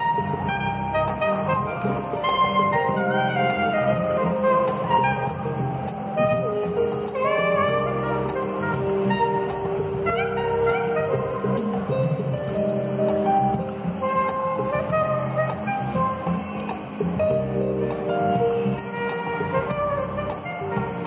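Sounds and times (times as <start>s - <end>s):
low musical accompaniment: 0.0s - 21.0s
soprano saxophone melody: 0.0s - 21.0s.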